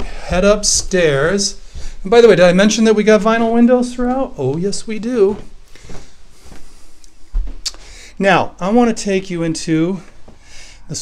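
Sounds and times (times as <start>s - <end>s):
footsteps: 0.0s - 8.0s, 9.7s - 10.6s.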